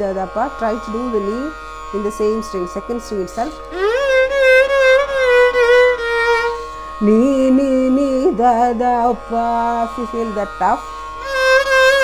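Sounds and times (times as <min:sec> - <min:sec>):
bowed violin long held note: 0:00.0 - 0:12.0.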